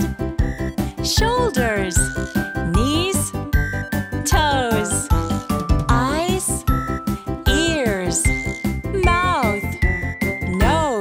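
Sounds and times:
children's song backing track: 0.0 - 11.0
person calling out words: 1.0 - 3.3, 4.3 - 5.3, 5.9 - 6.6, 7.5 - 8.3, 9.0 - 9.7, 10.5 - 11.0.

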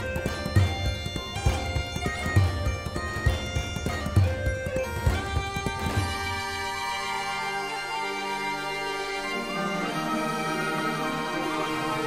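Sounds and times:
orchestral music sustained chords: 5.0 - 12.0.

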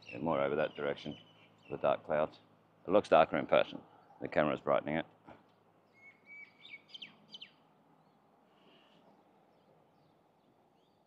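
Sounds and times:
outdoor background noise: 0.0 - 11.0
faint bird calls: 5.3 - 11.0.

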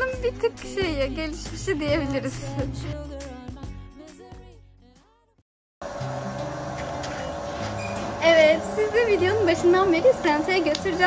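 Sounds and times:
mechanical hum: 5.8 - 11.0.

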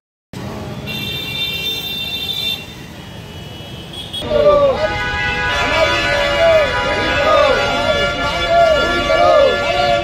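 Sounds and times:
street traffic: 0.3 - 10.0
vehicle horn: 0.8 - 10.0
men shouting slogans together: 4.2 - 10.0.

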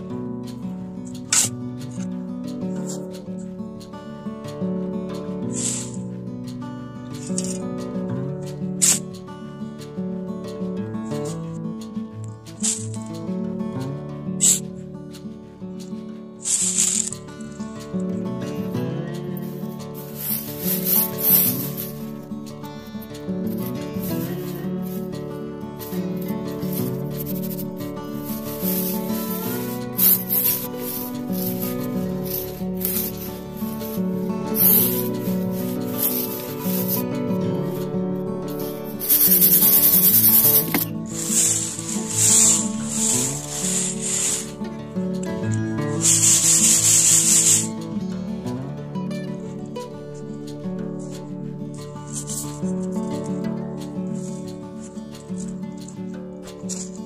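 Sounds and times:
background music: 0.0 - 57.0
soil scraping through wire mesh: 5.4 - 6.1, 7.1 - 9.2, 11.0 - 13.2, 13.9 - 48.0, 51.0 - 57.0.

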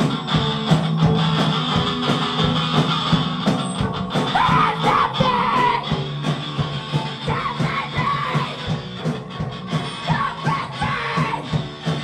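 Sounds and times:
bass guitar: 0.0 - 12.0
drums: 0.0 - 12.0
electric guitar: 0.0 - 12.0
yelled vocals: 4.2 - 9.1, 9.7 - 12.0.

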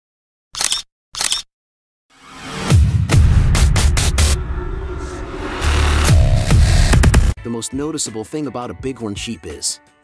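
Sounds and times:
camera shutter clicking: 0.6 - 1.5.

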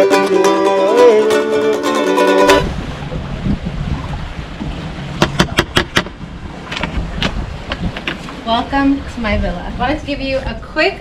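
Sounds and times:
wind buffeting microphone: 2.4 - 11.0.

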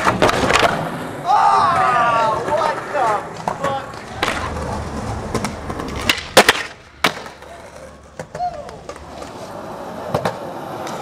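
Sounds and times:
skateboard tail cracks: 0.0 - 1.0, 2.4 - 11.0
skateboard wheels rolling on concrete: 0.0 - 11.0.

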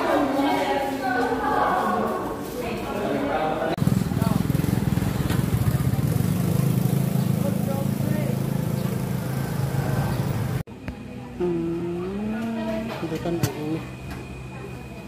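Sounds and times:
vehicle engine running: 3.8 - 12.9.

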